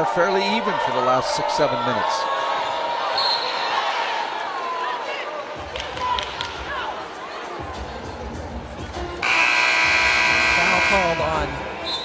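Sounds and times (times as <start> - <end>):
arena horn blast: 9.2 - 12.0.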